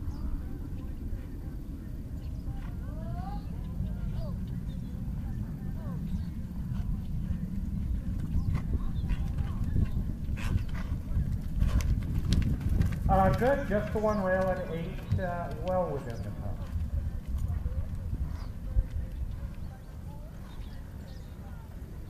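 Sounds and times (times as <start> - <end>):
distant voices: 0.0 - 22.0
low rumble: 0.0 - 22.0
horse hoofbeats on sand: 6.7 - 21.8.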